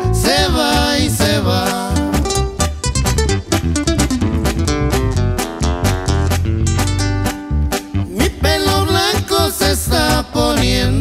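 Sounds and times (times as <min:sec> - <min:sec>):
acoustic guitars picking: 0:00.0 - 0:11.0
electric bass line: 0:00.0 - 0:11.0.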